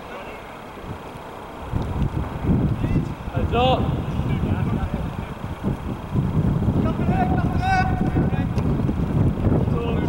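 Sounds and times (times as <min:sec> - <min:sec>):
wind buffeting microphone: 0:00.6 - 0:10.0
distant drawn-out shout: 0:06.8 - 0:08.6.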